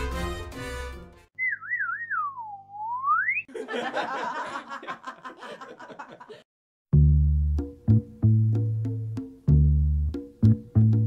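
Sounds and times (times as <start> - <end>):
background music: 0.0 - 1.3, 7.0 - 11.0
comic whistle: 1.4 - 3.5.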